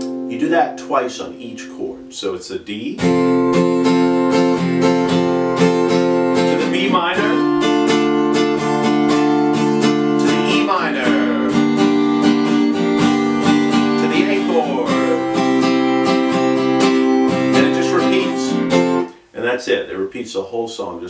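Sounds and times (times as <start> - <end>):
acoustic guitar strumming: 0.0 - 2.3, 3.0 - 19.3.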